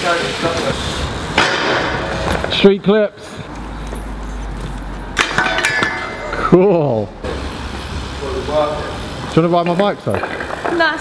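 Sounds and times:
bike rolling rumble: 0:00.1 - 0:02.6, 0:07.3 - 0:11.0
pegs clanking on steel rail: 0:05.2 - 0:06.4.

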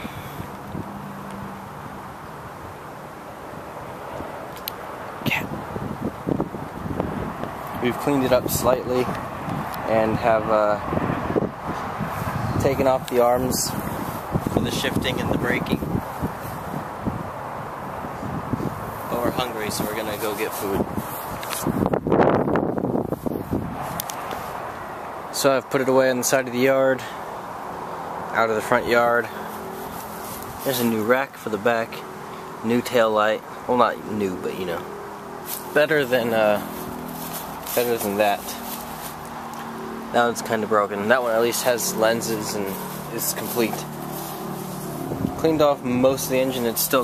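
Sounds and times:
wind on microphone: 0:05.2 - 0:24.7, 0:41.9 - 0:46.8
footsteps rustling on dry grass: 0:29.4 - 0:31.0, 0:35.4 - 0:39.8, 0:41.1 - 0:45.3.

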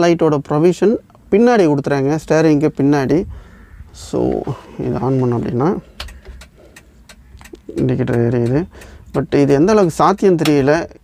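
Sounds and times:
man's voice: 0:04.0 - 0:05.9, 0:07.6 - 0:11.0
quick light clicks of dashboard controls: 0:05.9 - 0:10.8.

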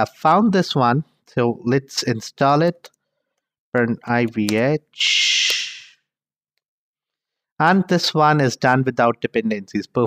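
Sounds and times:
breathy hiss: 0:05.0 - 0:06.0.

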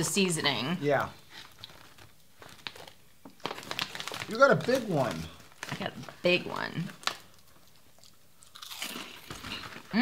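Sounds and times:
person chewing crunchy food: 0:07.0 - 0:09.9.

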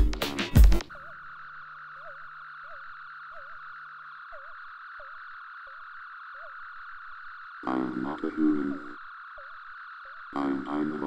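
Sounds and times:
warbling electronic chirps: 0:00.8 - 0:11.0.

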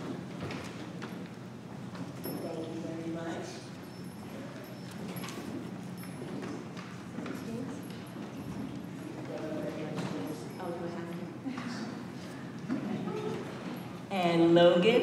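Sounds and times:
low chatter of voices: 0:06.3 - 0:15.0.

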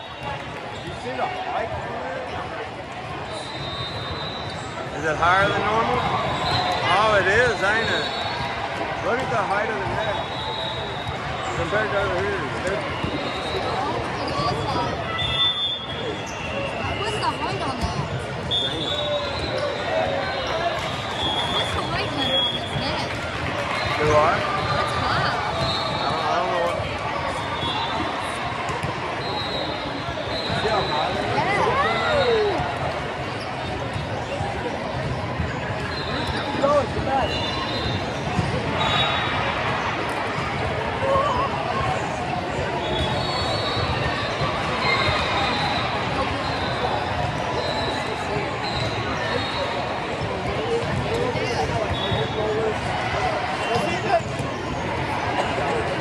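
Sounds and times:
people calling and shouting: 0:00.0 - 0:56.0
sneakers squeaking on court: 0:33.2 - 0:40.6, 0:42.0 - 0:52.4.

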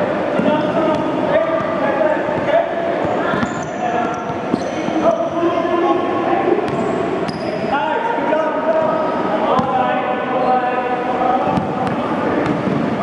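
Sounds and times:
basketballs bouncing on court: 0:00.4 - 0:05.4, 0:06.6 - 0:07.5, 0:09.5 - 0:09.9, 0:11.4 - 0:13.0
high-pitched shoe squeaks: 0:03.1 - 0:05.4, 0:06.7 - 0:07.7.

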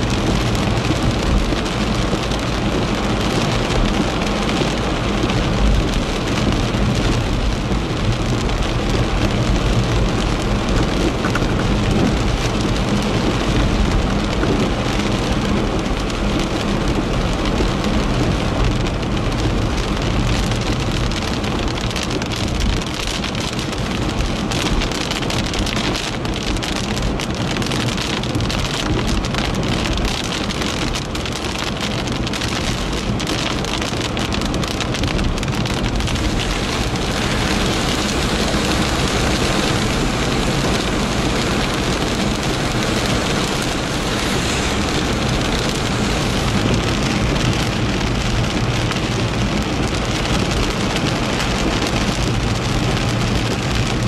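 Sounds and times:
heavy rain drumming on car roof: 0:00.0 - 0:54.0
road and engine noise: 0:00.0 - 0:54.0.

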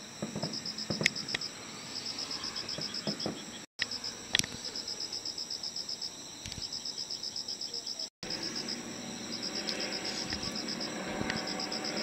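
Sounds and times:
insect chirping: 0:00.0 - 0:12.0.

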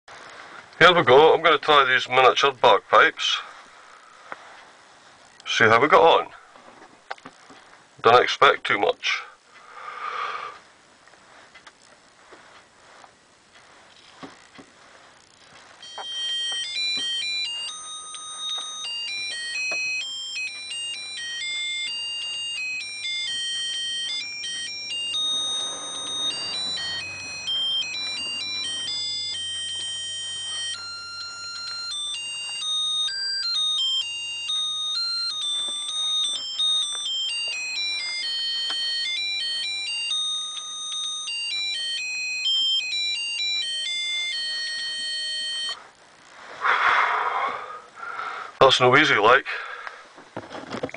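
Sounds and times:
shrill miniature bagpipes tune: 0:15.8 - 0:45.8.

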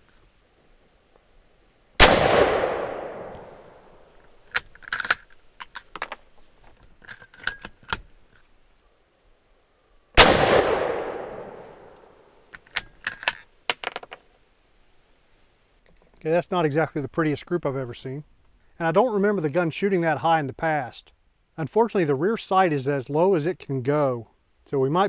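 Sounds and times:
rifle shots with echo: 0:02.0 - 0:04.0, 0:10.2 - 0:12.0.

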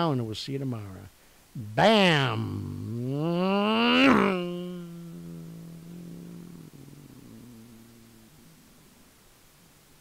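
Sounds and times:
low pitched hum: 0:01.6 - 0:10.0.

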